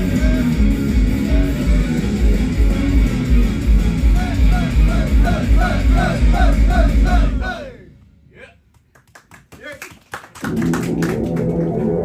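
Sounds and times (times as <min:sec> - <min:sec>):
rock music with guitar: 0:00.0 - 0:07.3
hand claps: 0:08.7 - 0:12.0.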